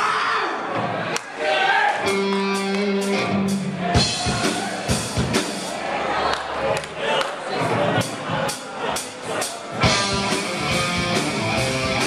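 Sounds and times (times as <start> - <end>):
band playing drums and guitar: 2.0 - 5.9, 7.7 - 12.0
heavy drum hit: 3.9 - 5.7.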